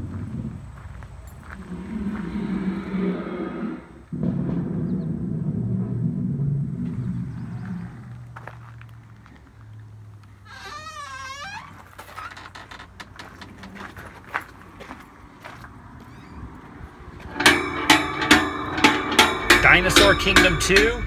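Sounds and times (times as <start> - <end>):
low rough growl: 1.5 - 9.4
wooden door creaking: 10.4 - 14.1, 16.0 - 16.7.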